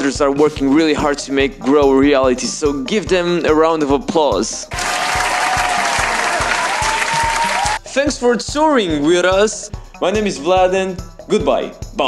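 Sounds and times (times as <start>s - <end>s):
background music with steady beat: 0.0s - 12.0s
crowd applause: 4.7s - 7.8s.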